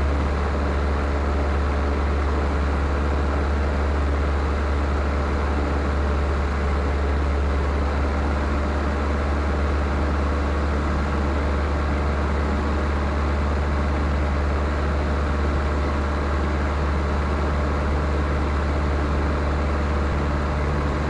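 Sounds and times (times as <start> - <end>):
airplane engine drone in cabin: 0.0 - 21.0.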